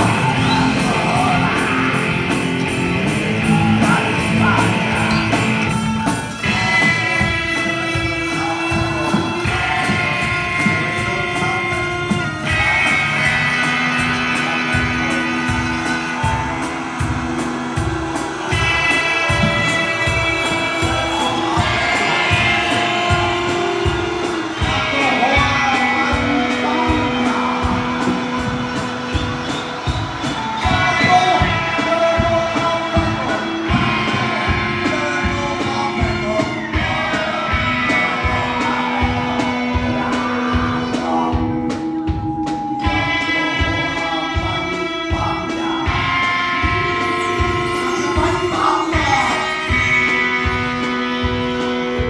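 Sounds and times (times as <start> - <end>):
bass guitar: 0.0 - 52.0
electric guitar: 0.0 - 52.0
steady drum beat: 0.0 - 52.0
voices singing: 0.0 - 52.0
electric hurdy-gurdy held notes: 41.1 - 52.0.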